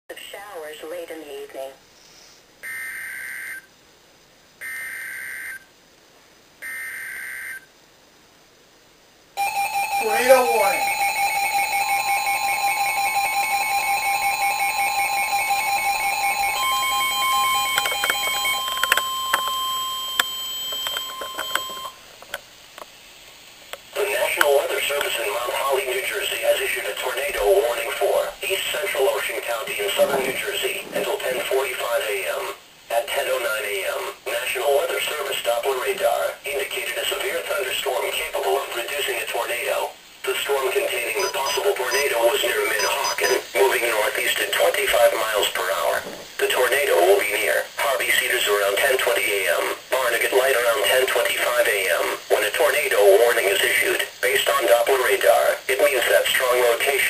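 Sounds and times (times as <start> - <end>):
data tone bursts: 9.4 - 22.0, 41.2 - 43.5
steady alert tone: 9.4 - 22.0, 41.2 - 43.5
broadcast voice reading: 10.0 - 10.9, 23.9 - 57.0.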